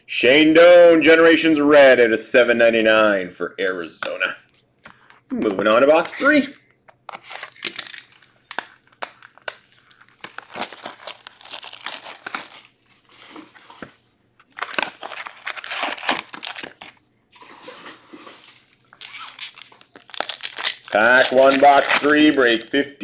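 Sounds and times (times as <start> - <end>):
card packaging crinkling and tearing: 7.0 - 22.7.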